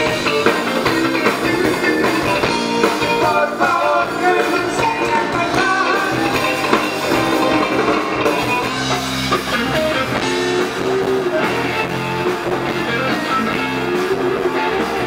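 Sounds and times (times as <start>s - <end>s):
live rock band playing: 0.0s - 15.0s.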